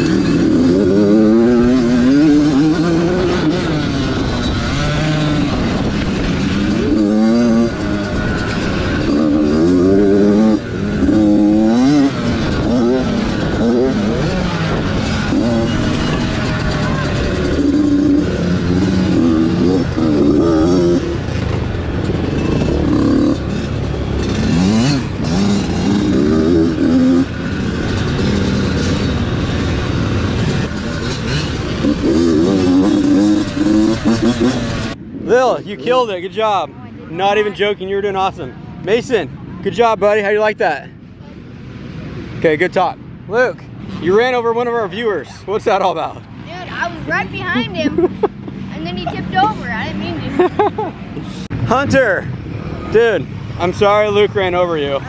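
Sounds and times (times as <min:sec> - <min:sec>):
dirt bike engine revving: 0:00.0 - 0:36.3
other dirt bikes running: 0:00.0 - 0:55.0.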